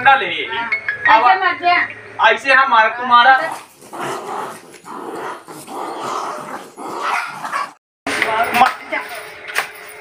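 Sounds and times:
dogs fighting growling and yapping: 0:03.4 - 0:07.8.

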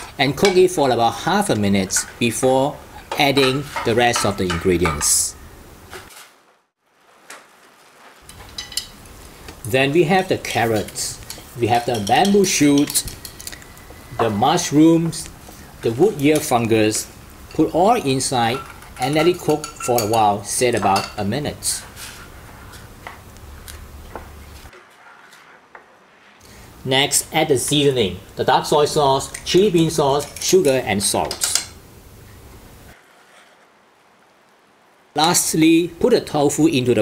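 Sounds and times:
broth boiling gently: 0:06.8 - 0:37.0.

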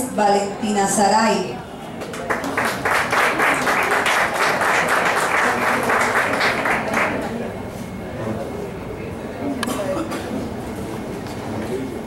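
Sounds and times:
murmur of audience voices: 0:00.0 - 0:12.0.

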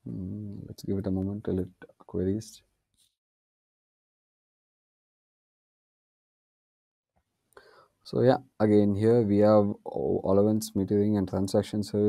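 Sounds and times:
person speaking: 0:00.0 - 0:02.6, 0:08.1 - 0:12.0.

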